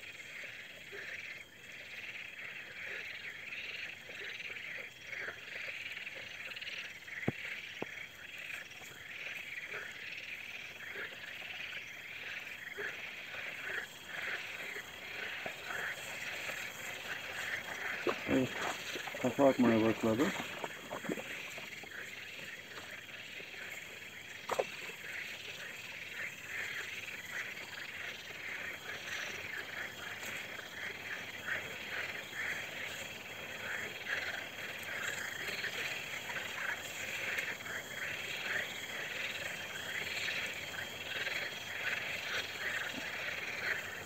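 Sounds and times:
frogs croaking: 0:00.0 - 0:44.0.

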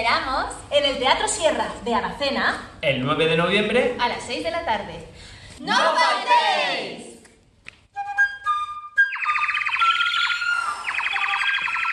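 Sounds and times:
bird whistle warbling trill: 0:08.0 - 0:11.9.

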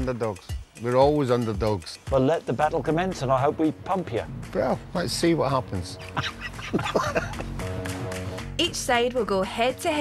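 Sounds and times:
background music: 0:00.0 - 0:10.0
man laughing heartily: 0:06.0 - 0:07.6.

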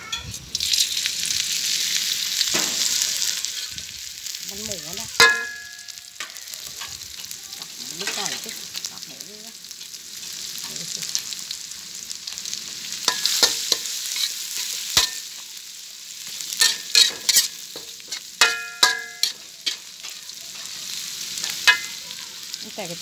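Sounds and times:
food sizzling in hot oil: 0:00.0 - 0:23.0
metal spatula scraping wok: 0:01.6 - 0:09.0, 0:12.7 - 0:15.5, 0:16.2 - 0:22.1.

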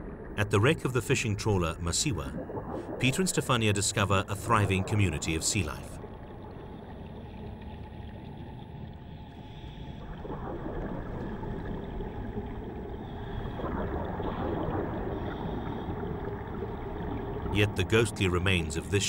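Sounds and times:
low rush of water: 0:00.0 - 0:09.4
bubbles gurgling underwater: 0:02.0 - 0:08.9, 0:10.0 - 0:17.6.

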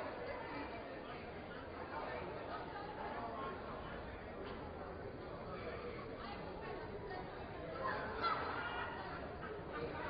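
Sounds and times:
murmur of many people talking: 0:00.0 - 0:10.0.

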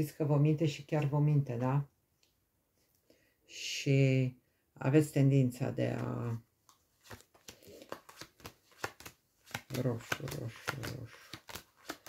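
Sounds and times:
playing cards snapping and slapping: 0:07.0 - 0:12.0.

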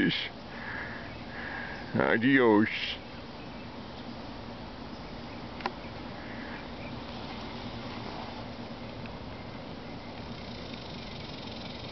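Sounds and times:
outdoor background hiss: 0:00.0 - 0:11.9.

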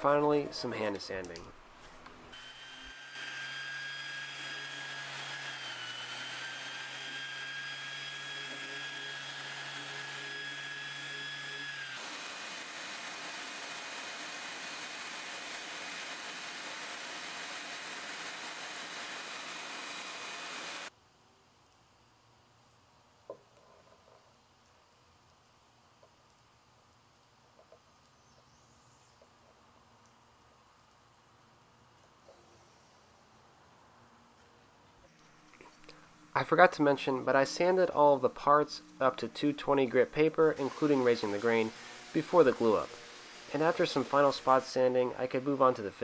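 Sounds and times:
orbital sander motor whine: 0:02.3 - 0:20.9
sanding hiss: 0:38.8 - 0:45.7.

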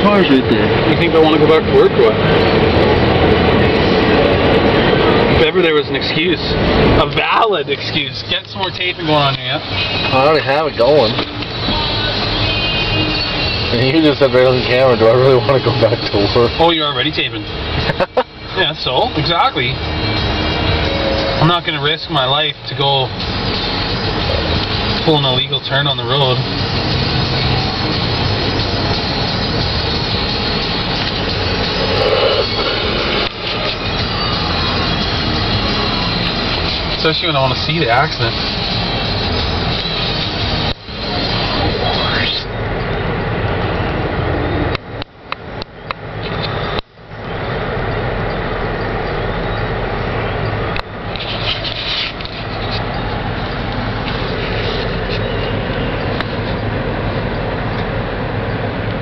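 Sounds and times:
vehicle cabin rumble and hiss: 0:00.0 - 0:12.1, 0:21.2 - 0:59.0.

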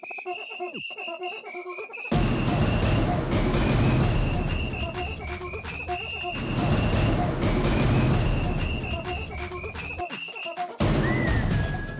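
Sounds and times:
electronic music with glitch effect: 0:00.0 - 0:11.9.

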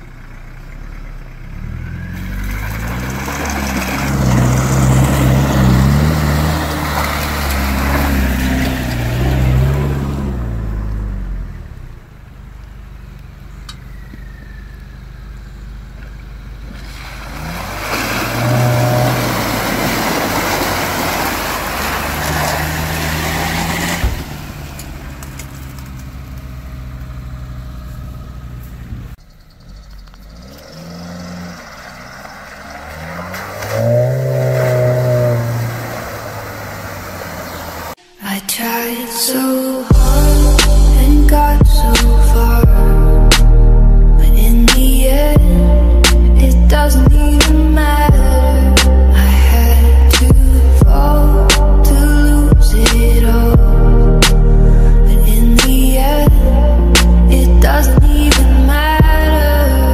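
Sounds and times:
driving through mud and water: 0:00.0 - 0:38.0, 0:39.8 - 0:59.9
off-road engines revving: 0:00.0 - 0:38.0, 0:39.9 - 0:59.9.

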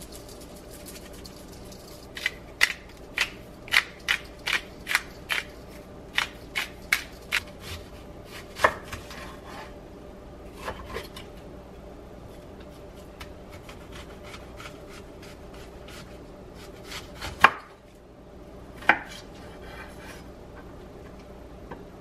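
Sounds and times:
knife chopping on cutting board: 0:06.1 - 0:09.2, 0:13.5 - 0:17.7, 0:18.8 - 0:19.2.

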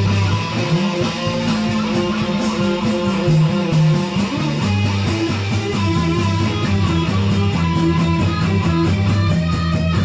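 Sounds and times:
drum kit with cymbals: 0:00.0 - 0:10.0
electric bass low notes: 0:00.0 - 0:10.0
electric guitar: 0:00.0 - 0:10.0.

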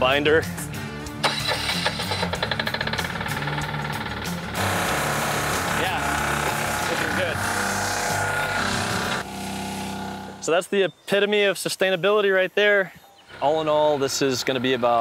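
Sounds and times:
block press machine running: 0:02.7 - 0:10.4.

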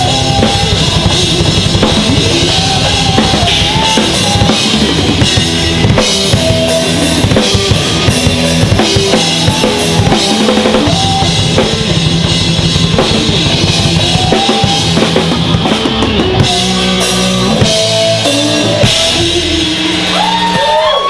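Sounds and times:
rapid bass drum strokes: 0:00.0 - 0:21.0
rock band playing loudly: 0:00.0 - 0:21.0.

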